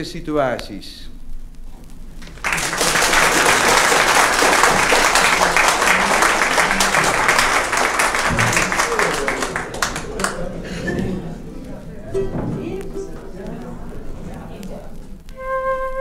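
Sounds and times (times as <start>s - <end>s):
audience applause on vinyl: 2.2s - 10.8s.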